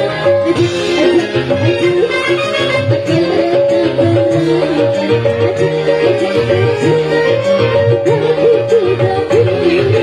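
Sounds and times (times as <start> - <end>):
band music with electronic keyboard: 0.0 - 10.0.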